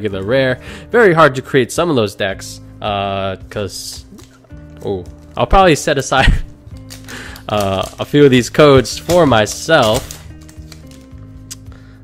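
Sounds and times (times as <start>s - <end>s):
soft music of held notes: 0.0s - 12.0s
foil wrappers crinkling: 3.8s - 11.6s.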